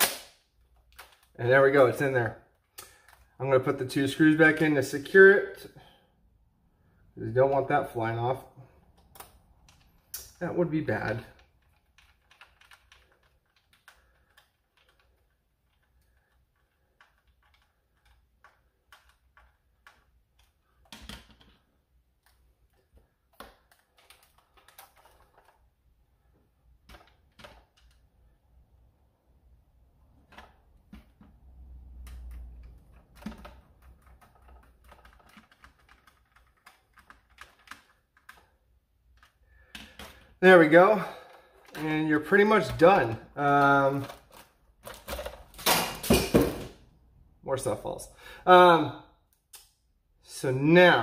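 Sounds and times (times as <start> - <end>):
plastic parts clicking: 8.8 - 25.7, 26.3 - 28.2, 30.2 - 40.4, 41.3 - 46.4.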